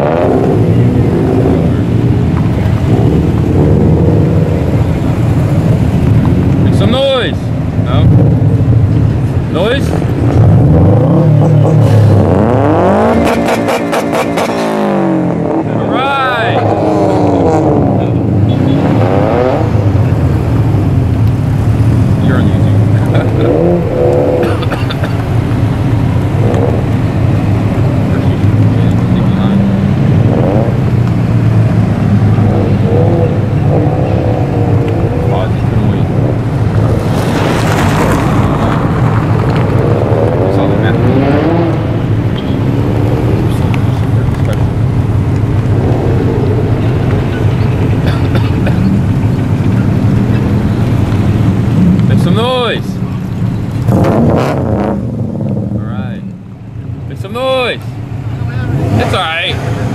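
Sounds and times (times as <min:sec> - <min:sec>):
car engines revving past: 0:00.0 - 0:59.9.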